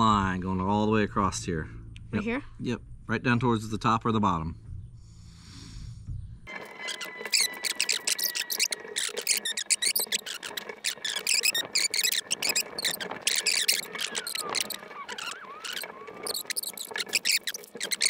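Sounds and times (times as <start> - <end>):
faint squeaky pitch glides: 6.5 - 18.0.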